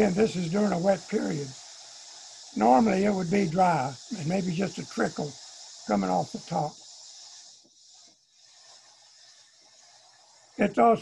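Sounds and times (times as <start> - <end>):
faint high hiss: 0.0 - 11.0.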